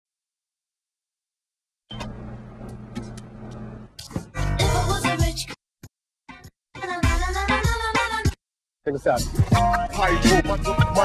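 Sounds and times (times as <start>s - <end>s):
refrigerator humming: 1.9s - 4.0s.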